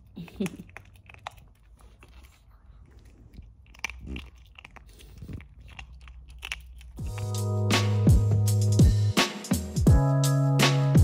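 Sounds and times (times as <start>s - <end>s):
dog chewing crunchy treat: 0.0s - 7.7s.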